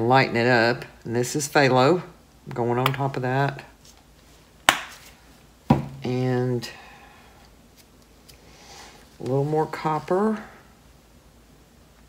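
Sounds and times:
plastic bottle knocking on table: 0:05.7 - 0:06.0.

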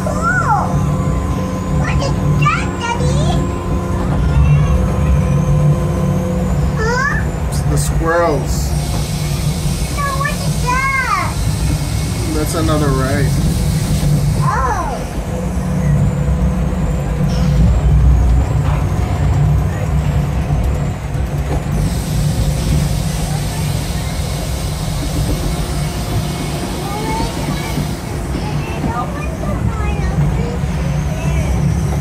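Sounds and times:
ride car rumbling on track: 0:00.0 - 0:32.0
hiss: 0:08.8 - 0:14.4.

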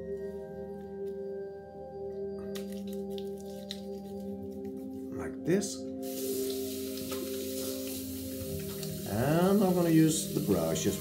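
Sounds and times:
lather crackling on stubble: 0:02.4 - 0:05.2, 0:05.9 - 0:11.0.

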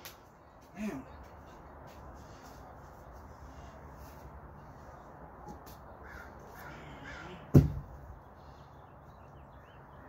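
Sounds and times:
crows cawing: 0:06.0 - 0:07.6
tyre thudding on grass: 0:07.5 - 0:08.0.

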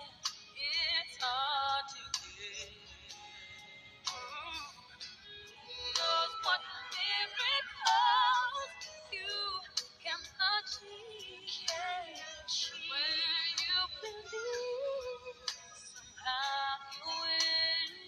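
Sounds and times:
light musical accompaniment: 0:00.0 - 0:18.0
woman singing with vibrato: 0:05.7 - 0:18.0.

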